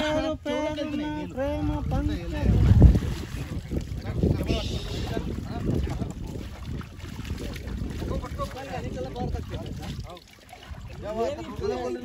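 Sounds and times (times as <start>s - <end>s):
voices: 0.0s - 6.6s, 7.6s - 12.0s
water sloshing and splashing: 0.0s - 12.0s
wind buffeting microphone: 0.0s - 12.0s.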